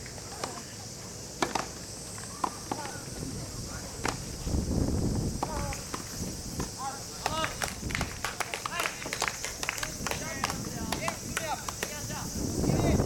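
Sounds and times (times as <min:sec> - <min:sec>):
high-pitched hiss: 0:00.0 - 0:13.0
tennis balls struck and bouncing: 0:01.4 - 0:01.8, 0:04.0 - 0:04.3
distant shouts and calls: 0:02.0 - 0:04.4, 0:05.3 - 0:13.0.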